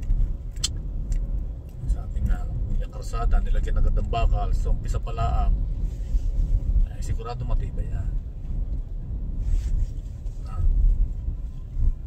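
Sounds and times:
car cabin road rumble: 0:00.0 - 0:12.0.

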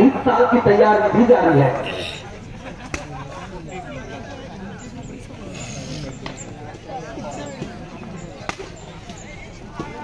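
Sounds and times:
murmur of crowd voices: 0:00.0 - 0:10.0.

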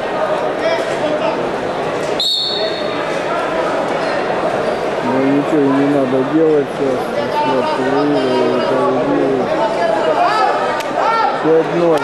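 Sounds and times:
crowd murmur: 0:00.0 - 0:12.0
referee's whistle blast: 0:02.2 - 0:02.9.

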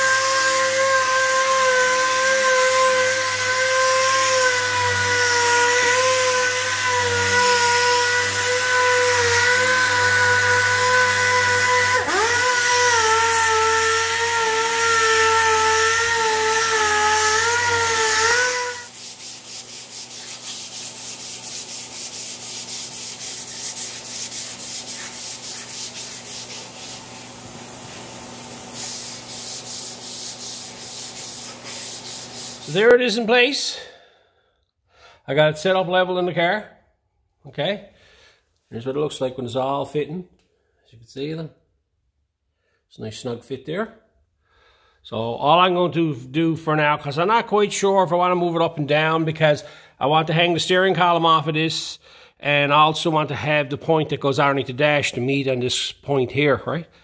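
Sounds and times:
rhythmic rubbing on metal tube: 0:10.7 - 0:32.9.

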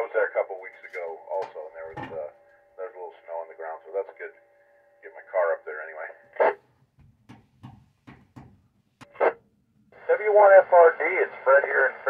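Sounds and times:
radio voices through speaker: 0:05.1 - 0:06.6, 0:09.1 - 0:09.4, 0:10.0 - 0:12.0.

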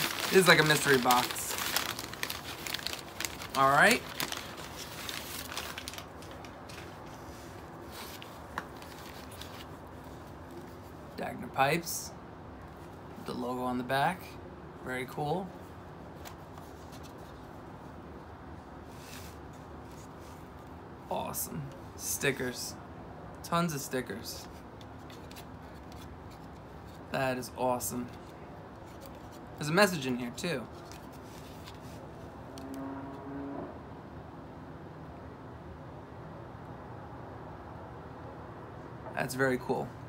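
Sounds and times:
room background noise: 0:00.0 - 0:40.0.

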